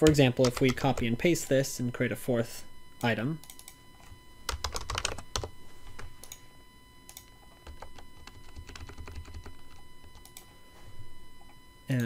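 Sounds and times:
typing on a keyboard: 0:04.5 - 0:05.5, 0:07.1 - 0:10.4.

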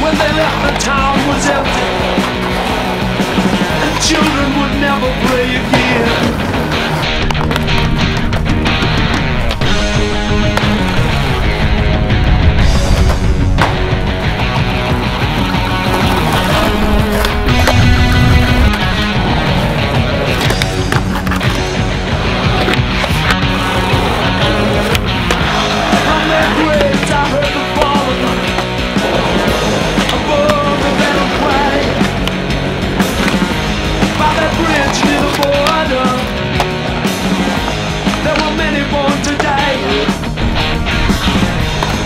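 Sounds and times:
skateboard clacks: 0:00.0 - 0:11.8, 0:12.9 - 0:40.3, 0:41.1 - 0:42.0
rock music with electric guitars: 0:00.0 - 0:42.0
skateboard wheels rolling on pavement: 0:00.0 - 0:42.0.

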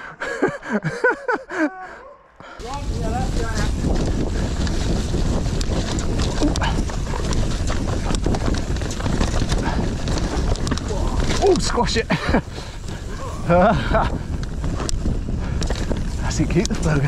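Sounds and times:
bike rattling and knocking: 0:02.6 - 0:17.0
bike tyres on loose dirt: 0:02.6 - 0:17.0
wind rumble on microphone: 0:02.6 - 0:17.0.

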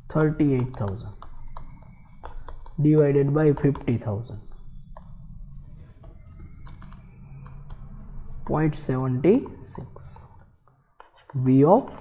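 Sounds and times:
computer keyboard typing: 0:00.0 - 0:11.4
low steady hum: 0:00.0 - 0:12.0.

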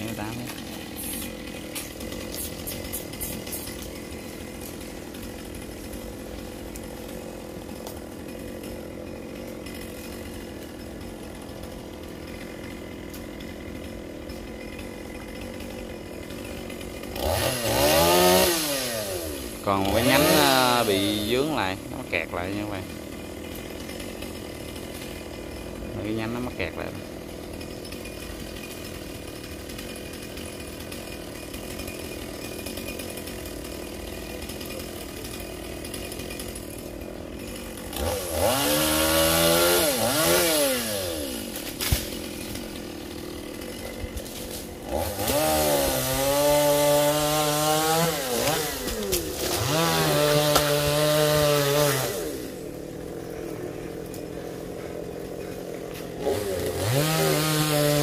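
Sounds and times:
chainsaw idling and revving: 0:00.0 - 0:58.0.

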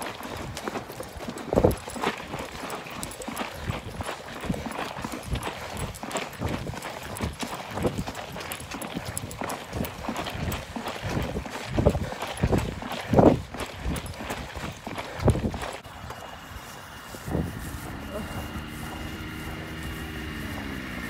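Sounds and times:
running footsteps on asphalt: 0:00.0 - 0:21.0.

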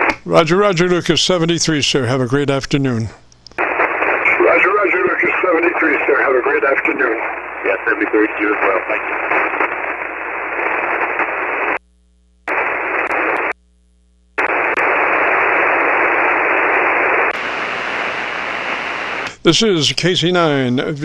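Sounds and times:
radio static hiss: 0:00.0 - 0:21.0
thin radio voice: 0:04.0 - 0:09.5.

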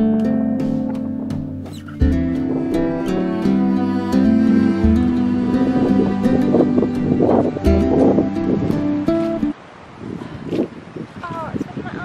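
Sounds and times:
strummed plucked strings music: 0:00.0 - 0:09.6
faint wind: 0:00.0 - 0:12.0.

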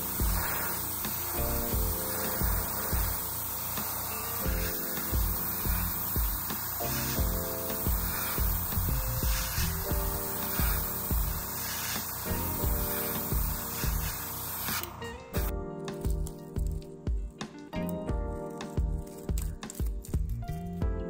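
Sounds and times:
airbrush spraying hiss: 0:00.0 - 0:16.9, 0:18.4 - 0:20.4
background music with beat: 0:00.0 - 0:21.0.

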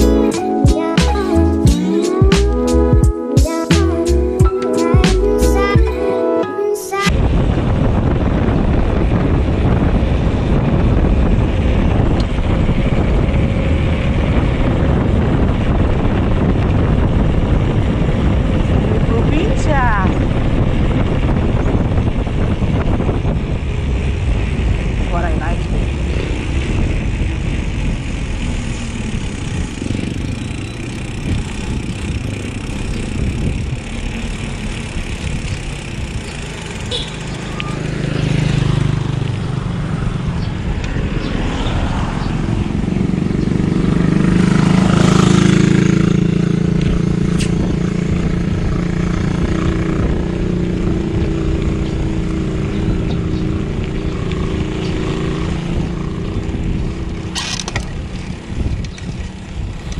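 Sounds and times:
wind buffeting microphone: 0:07.1 - 0:59.9
bike tyres on concrete: 0:22.0 - 0:59.9.

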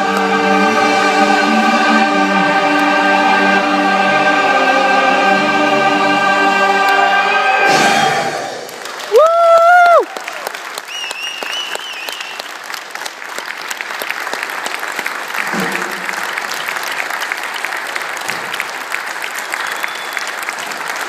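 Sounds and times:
audience applauding: 0:08.4 - 0:21.0.

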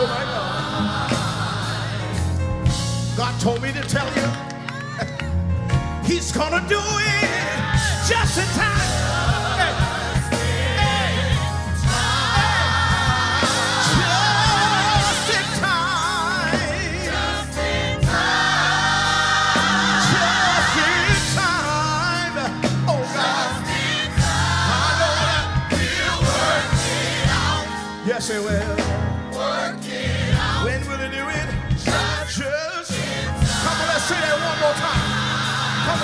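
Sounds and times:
gospel choir singing: 0:00.0 - 0:03.2, 0:06.0 - 0:36.0
live band playing: 0:00.0 - 0:36.0.

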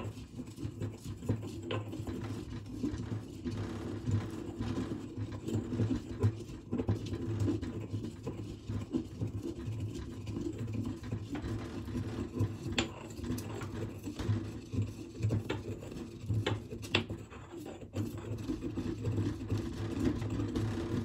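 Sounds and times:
pestle grinding in metal mortar: 0:00.0 - 0:21.0.

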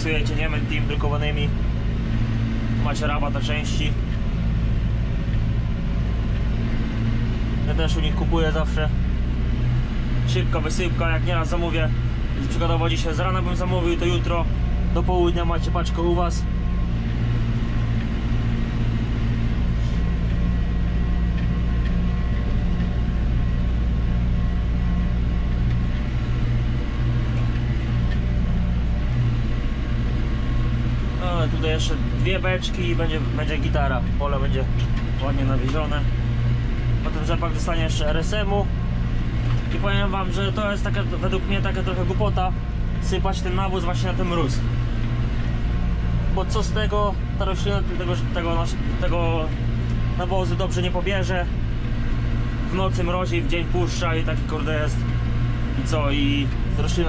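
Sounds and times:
tractor engine low drone: 0:00.0 - 0:57.0.

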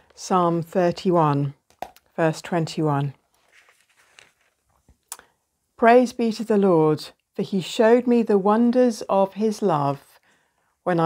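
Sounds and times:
book pages rustling: 0:03.2 - 0:05.0.

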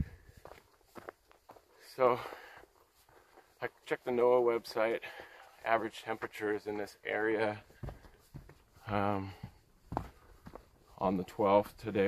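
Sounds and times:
footsteps on dirt trail: 0:00.0 - 0:11.8.

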